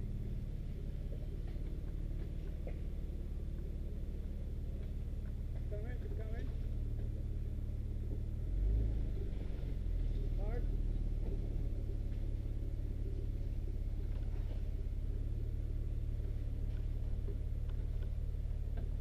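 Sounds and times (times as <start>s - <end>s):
truck engine running low: 0.0s - 19.0s.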